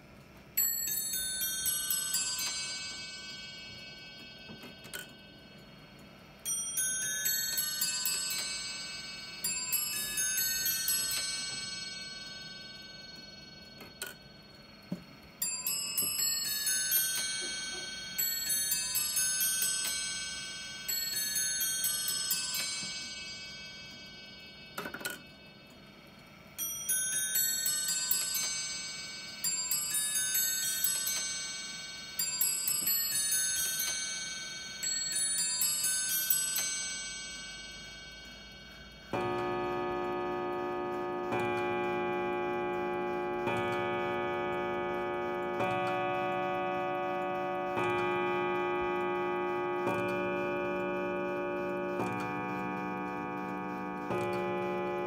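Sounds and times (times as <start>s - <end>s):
clock chiming on bells: 0.0s - 55.0s
deep clock hour strikes: 36.7s - 55.0s.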